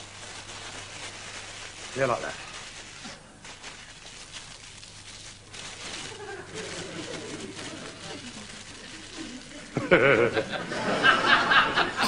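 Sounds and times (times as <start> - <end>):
faint laughing and voices: 6.0 - 12.0
loud laughter: 6.1 - 8.3, 9.2 - 12.0.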